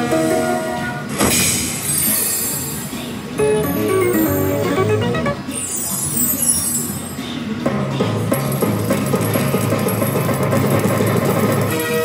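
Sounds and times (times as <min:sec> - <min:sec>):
slot machine win music: 0:03.4 - 0:06.0.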